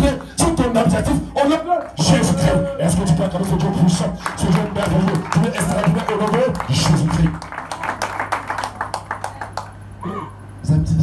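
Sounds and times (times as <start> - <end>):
man's voice: 0.0 - 7.4
sharp hand claps: 4.2 - 9.8.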